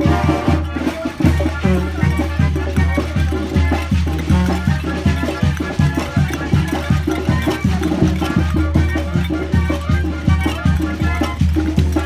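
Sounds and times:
brass melody: 0.0 - 12.0
percussion beat: 0.0 - 12.0
tuba bass line: 0.0 - 12.0.

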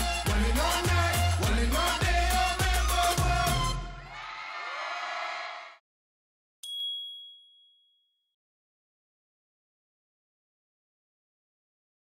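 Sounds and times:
stage sound: 0.0 - 5.0.

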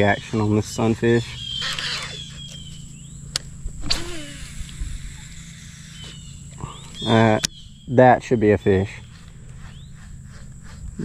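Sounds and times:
steady low hum: 0.0 - 11.0
sharp clicks: 1.4 - 5.4, 6.0 - 7.6
faint high chirps: 3.9 - 11.0.

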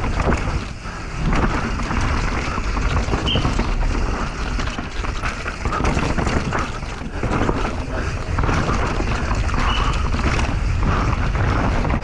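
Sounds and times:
bike knocks and rattles: 0.0 - 12.0
wind rushing over microphone: 0.0 - 12.0
tyres crunching over stones: 4.6 - 10.4.

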